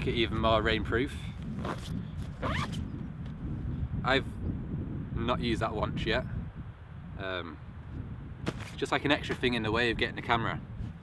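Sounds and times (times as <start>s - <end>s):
backpack zip pulled: 1.6s - 2.9s.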